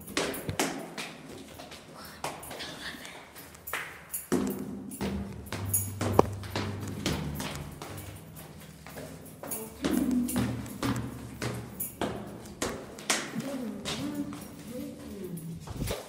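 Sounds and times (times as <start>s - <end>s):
footsteps on stairs: 0.0s - 16.0s.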